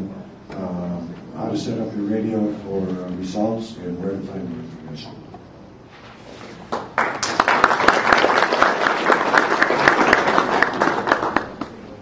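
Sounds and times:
audience applauding: 0:06.7 - 0:12.0.

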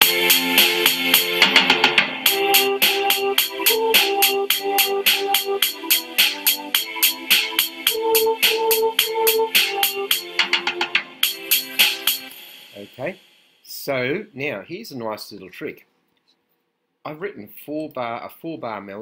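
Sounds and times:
synthesized melody: 0:00.0 - 0:13.2.

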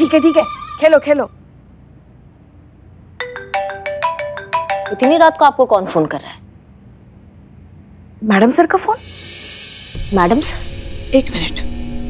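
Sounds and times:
phone ringtone melody: 0:03.2 - 0:05.4.

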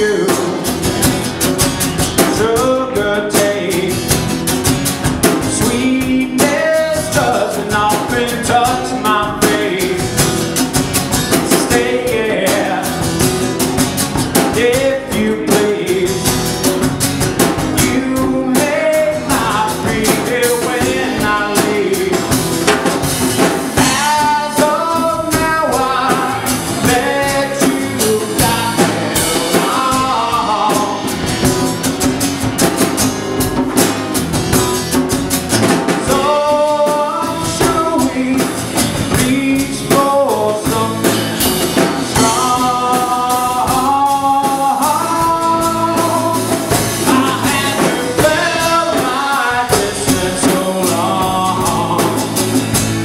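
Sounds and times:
man singing into a microphone: 0:00.0 - 0:00.9, 0:02.2 - 0:04.3, 0:05.2 - 0:10.4, 0:11.3 - 0:13.3, 0:14.2 - 0:22.7, 0:23.7 - 0:31.6, 0:35.9 - 0:52.7
acoustic guitar strumming: 0:00.0 - 0:53.0
drum kit: 0:00.0 - 0:53.0.

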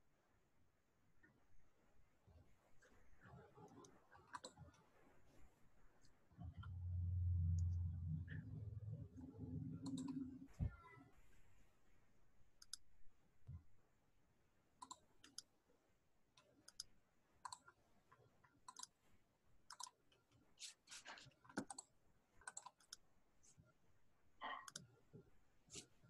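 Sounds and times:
faint irregular clicks: 0:02.3 - 0:05.0, 0:06.0 - 0:10.5, 0:12.5 - 0:13.7, 0:14.8 - 0:15.7, 0:16.3 - 0:23.8, 0:24.4 - 0:26.0.

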